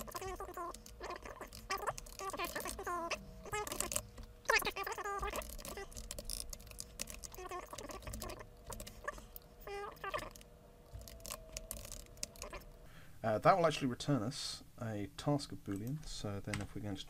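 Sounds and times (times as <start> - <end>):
computer keyboard typing: 0.0 - 9.3, 11.0 - 12.6
faint steady hum: 0.0 - 17.0.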